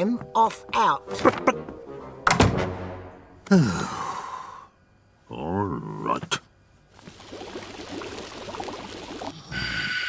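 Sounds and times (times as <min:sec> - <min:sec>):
person sighing: 0:03.4 - 0:04.7.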